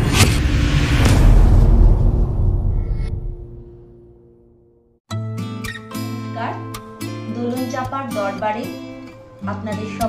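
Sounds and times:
loud deep rumble: 0.0s - 4.0s
whooshes: 0.0s - 4.0s.

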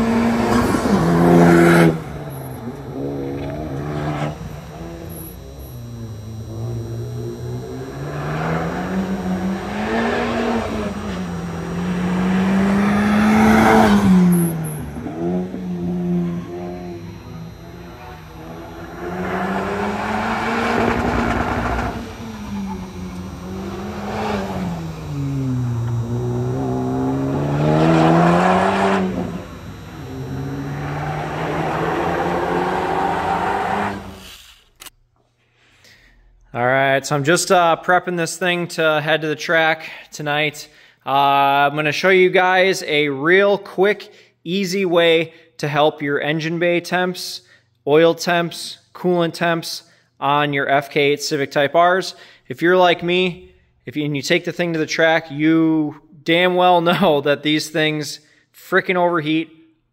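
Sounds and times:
car engine revving: 0.0s - 35.0s.

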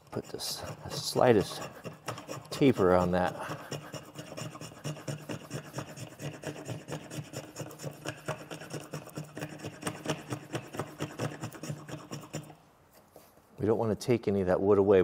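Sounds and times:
spokeshave scraping wood: 0.0s - 13.4s.

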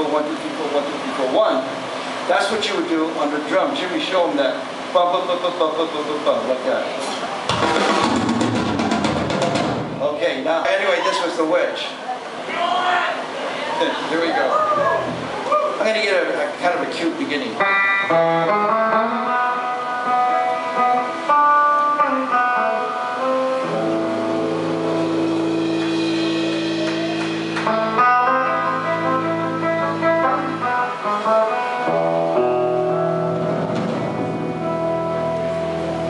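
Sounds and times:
electric guitar playing: 17.5s - 36.0s.

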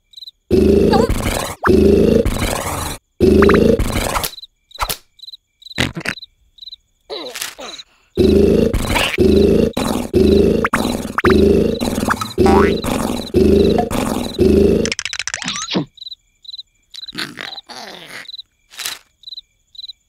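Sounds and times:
crickets chirping: 0.0s - 20.0s
cartoon snoring: 0.5s - 4.3s, 7.6s - 15.9s.

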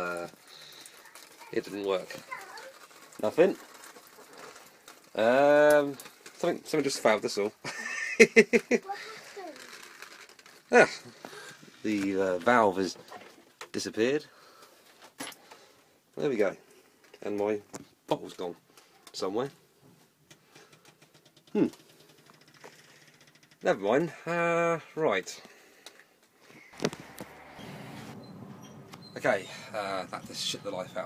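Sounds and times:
camera handling rustle: 26.5s - 27.9s
man speaking: 29.2s - 31.0s.

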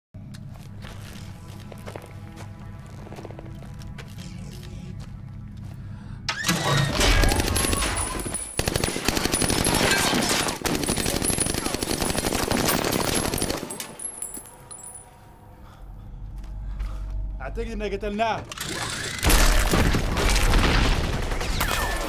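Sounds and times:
low film score drone: 0.2s - 8.0s, 14.7s - 19.7s
rapid automatic gunfire: 7.4s - 13.7s.

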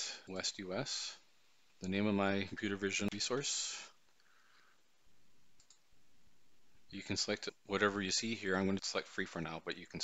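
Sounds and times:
computer keyboard and mouse clicks: 5.6s - 5.8s.

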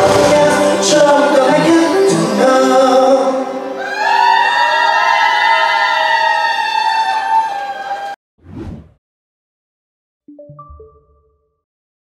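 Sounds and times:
pop-rock band music: 0.0s - 3.8s.

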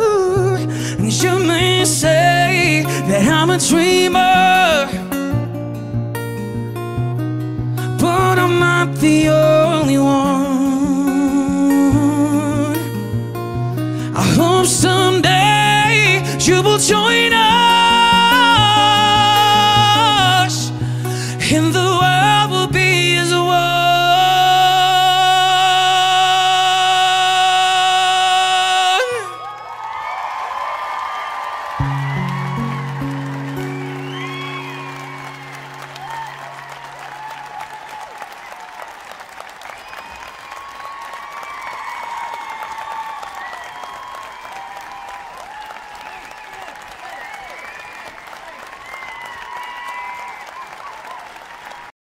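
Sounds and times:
audience cheering and applauding: 23.6s - 52.0s.

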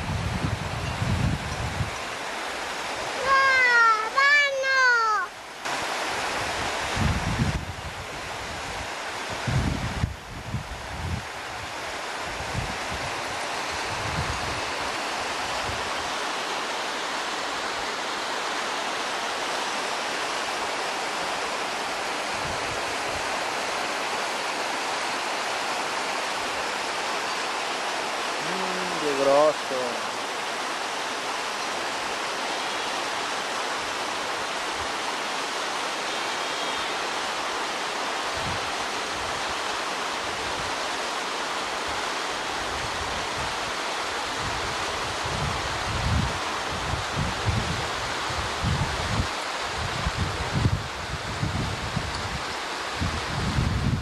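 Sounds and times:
wind buffeting microphone: 0.0s - 2.1s, 5.8s - 16.1s, 44.3s - 54.0s
stream running over rocks: 0.0s - 54.0s.

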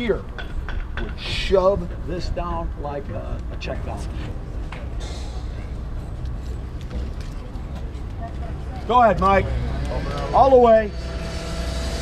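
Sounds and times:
engine rumbling: 0.0s - 12.0s.

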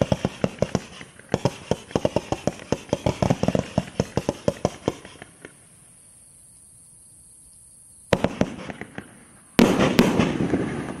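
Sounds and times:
fireworks bangs: 0.0s - 5.6s, 8.1s - 11.0s
rapid fireworks pops: 0.0s - 5.6s, 8.1s - 11.0s.

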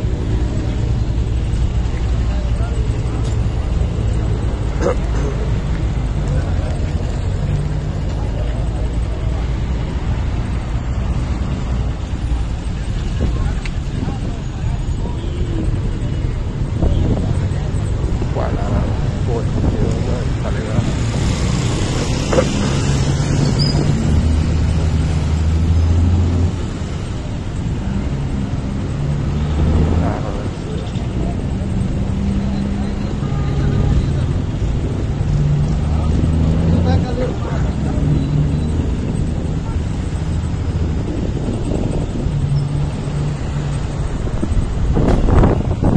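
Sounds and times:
street traffic: 0.0s - 45.9s.

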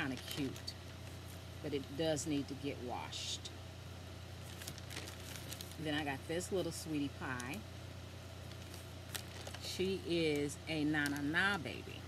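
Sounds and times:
woman speaking: 0.0s - 0.8s, 1.6s - 3.5s, 5.8s - 7.7s, 9.6s - 12.0s
plastic bag rustling: 0.0s - 1.7s, 4.3s - 6.1s, 8.4s - 11.9s
low steady hum: 0.0s - 12.0s.

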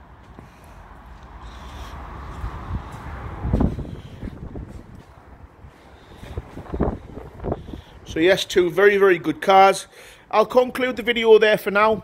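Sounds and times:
wind buffeting microphone: 1.3s - 8.7s.

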